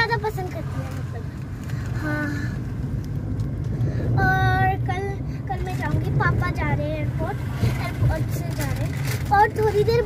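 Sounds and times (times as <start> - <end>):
girl's voice: 0.0 - 1.3, 4.1 - 10.0
car cabin rumble: 0.0 - 10.0.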